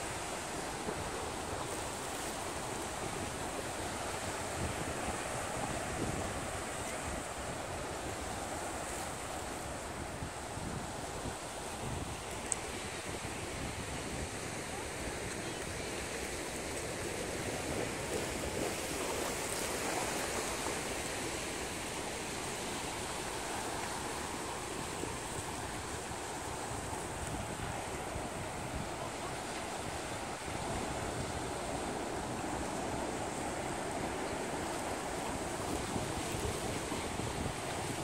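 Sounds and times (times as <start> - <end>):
choppy ocean water rushing: 0.0 - 38.0
wind: 0.0 - 38.0.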